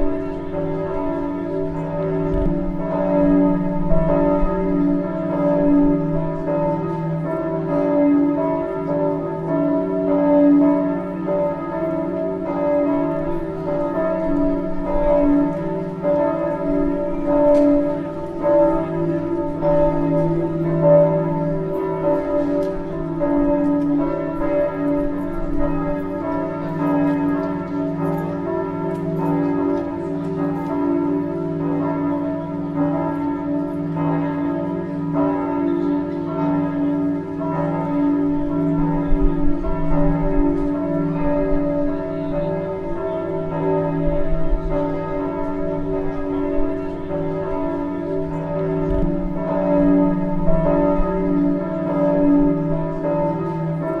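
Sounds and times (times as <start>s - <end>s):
church bells ringing: 0.0s - 54.0s.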